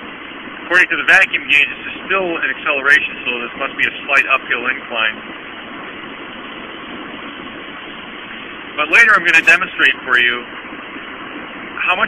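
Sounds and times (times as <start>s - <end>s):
car engine and road noise: 4.3s - 11.9s.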